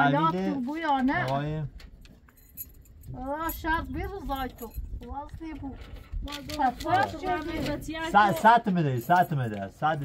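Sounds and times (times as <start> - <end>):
faint light ticks and clinks: 1.8 - 5.1.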